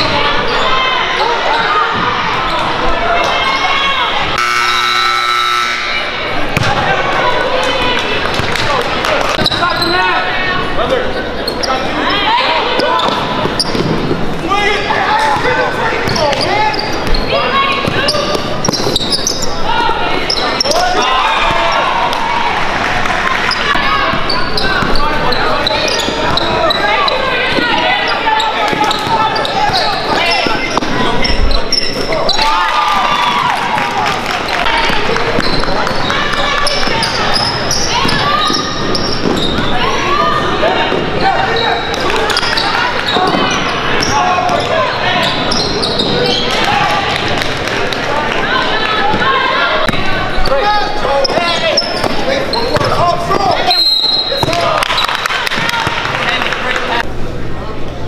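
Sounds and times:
spectators' voices and shouts: 0:00.0 - 0:58.0
basketball bouncing on court: 0:34.8 - 0:39.7.

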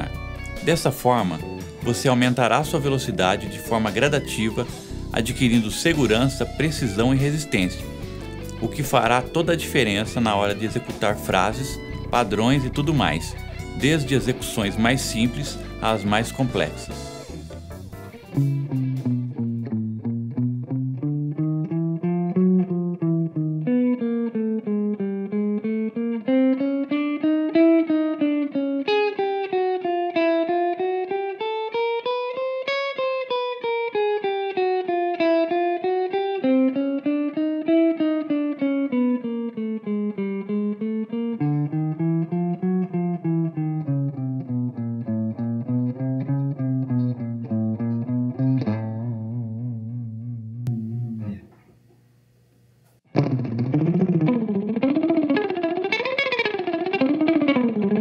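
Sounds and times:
electric guitar picking single notes: 0:00.0 - 0:58.0.

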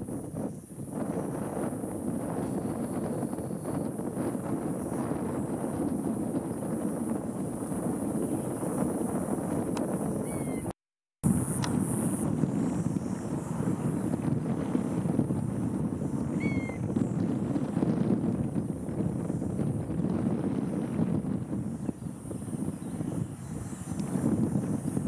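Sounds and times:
wind rumbling on microphone: 0:00.0 - 0:25.0
rising bird chirp: 0:10.2 - 0:10.8, 0:16.1 - 0:17.2.

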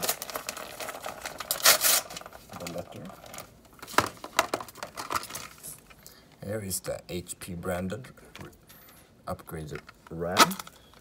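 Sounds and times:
packaging rustling and crackling: 0:00.0 - 0:06.0.

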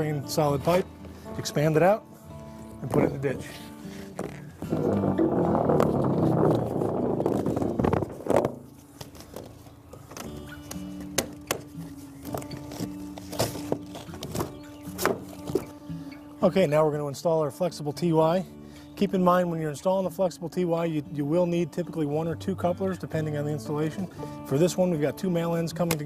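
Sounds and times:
background music: 0:00.0 - 0:26.0
plastic pipe crinkly rasp: 0:03.5 - 0:15.7.

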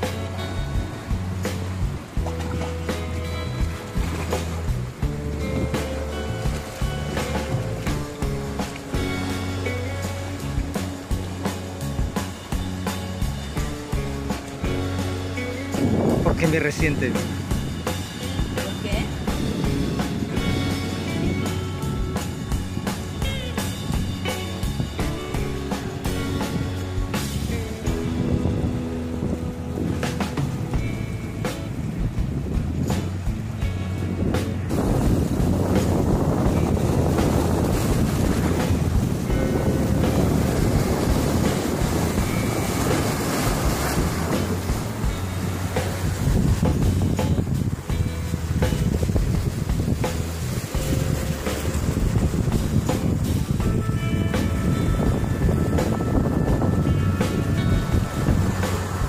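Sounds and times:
background music: 0:00.0 - 0:59.0
ocean surf washing among rocks: 0:00.0 - 0:59.0
wind buffeting microphone: 0:00.0 - 0:59.0.

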